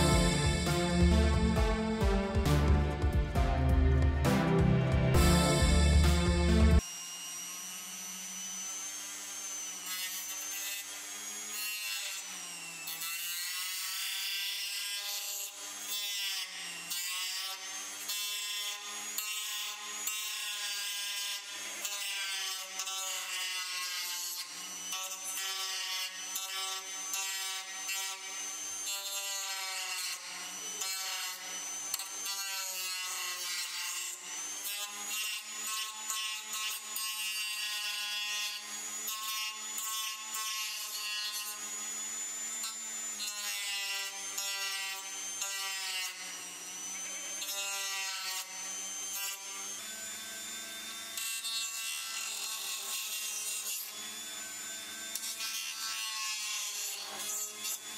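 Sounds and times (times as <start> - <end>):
rotary tool grinding plastic: 14.9 - 57.9.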